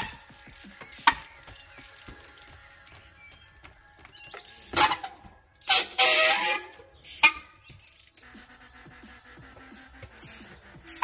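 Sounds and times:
bike knocking on wood: 0.0 - 7.9
tyre scraping on wood: 4.0 - 7.4.

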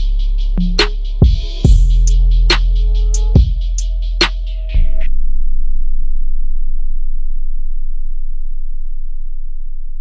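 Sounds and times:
deep synth bass tone: 0.0 - 10.0.

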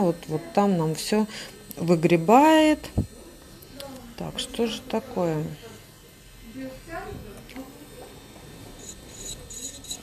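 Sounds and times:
electric nail drill humming: 0.0 - 10.0.

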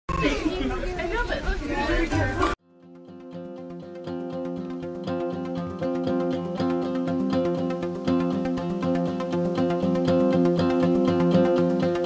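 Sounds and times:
people chattering: 0.1 - 2.6.

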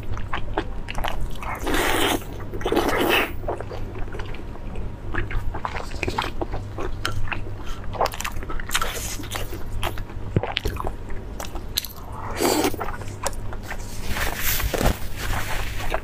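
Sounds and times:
wet chewing of meat: 0.0 - 14.6
steady low hum: 0.0 - 16.0.

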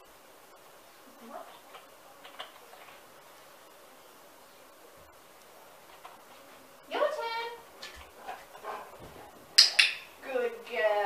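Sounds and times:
dog sniffing: 8.1 - 9.4.

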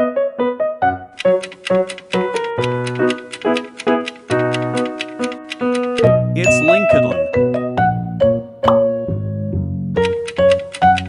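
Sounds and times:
clock-like ticking: 1.2 - 7.6, 10.0 - 11.0
held musical notes: 1.2 - 9.1.

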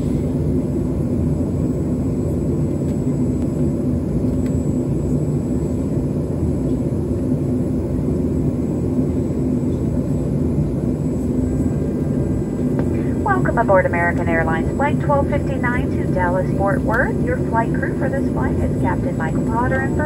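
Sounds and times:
aircraft cabin drone: 0.0 - 20.0
faint high whine: 0.0 - 20.0.

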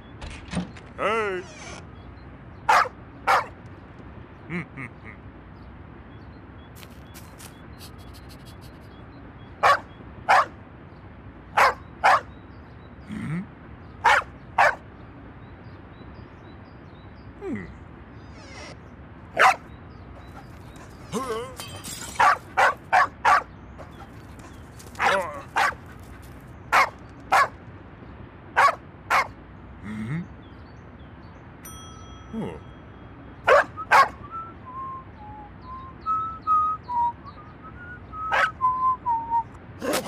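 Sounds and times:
dog barking: 2.7 - 3.5, 9.6 - 10.6, 11.6 - 12.3, 14.0 - 14.8, 19.4 - 19.7, 22.2 - 23.5, 25.0 - 25.8, 26.7 - 27.6, 28.6 - 29.4, 33.5 - 34.2, 38.3 - 38.6.

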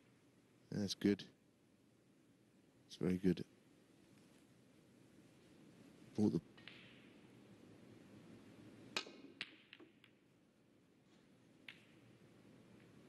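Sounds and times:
quiet arena hush: 2.8 - 13.0
snooker balls clicking together: 6.5 - 7.4, 8.9 - 10.4, 11.5 - 13.0
cue striking cue ball: 9.0 - 10.2, 11.6 - 12.1.

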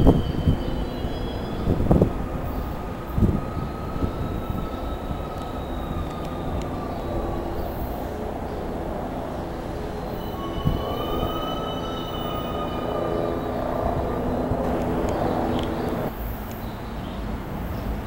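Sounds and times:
high wheel squeals: 0.0 - 16.2
train wheels rumbling on rail: 0.0 - 16.5.

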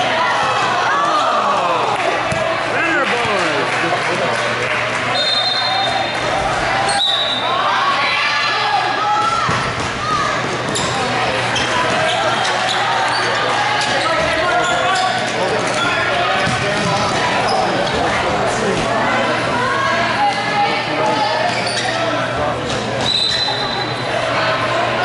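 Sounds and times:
players calling out: 0.0 - 22.3.

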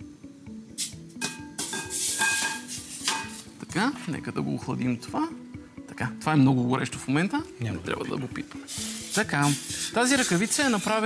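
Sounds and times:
hot metal hissing in water: 0.8 - 1.0, 1.6 - 3.5, 8.6 - 11.0.

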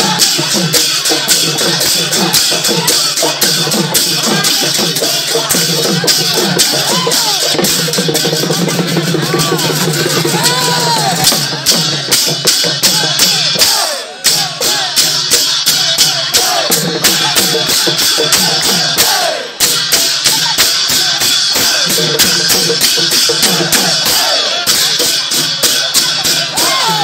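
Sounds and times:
drums and cymbals beat: 0.0 - 27.0
voices singing and calling: 0.0 - 27.0.

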